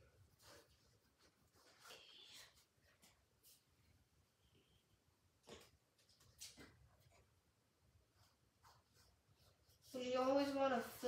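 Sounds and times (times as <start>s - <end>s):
paintbrush strokes on canvas: 8.1s - 11.0s.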